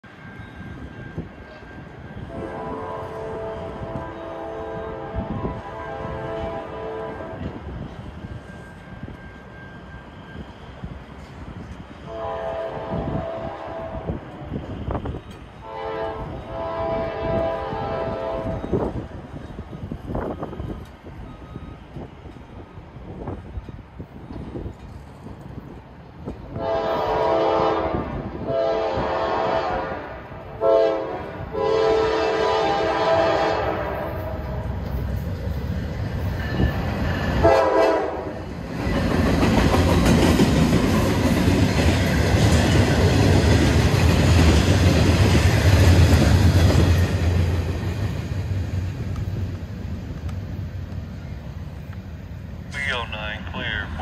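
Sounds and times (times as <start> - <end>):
train horn blasts: 2.2 - 7.6, 12.0 - 14.2, 15.6 - 18.9, 26.5 - 34.7, 37.4 - 38.4
wheels clattering on rail: 34.7 - 52.1
grade crossing signal: 50.8 - 54.0.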